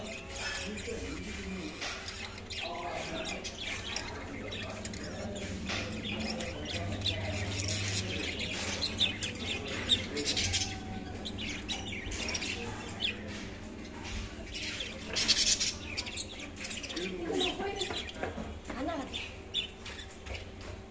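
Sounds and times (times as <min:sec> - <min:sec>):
budgerigars chirping and warbling: 0:00.0 - 0:20.9.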